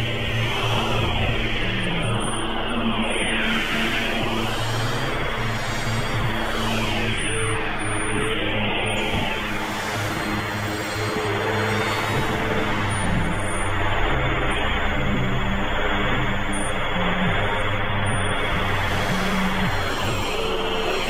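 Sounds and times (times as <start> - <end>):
experimental synthesizer drone music: 0.0 - 21.0.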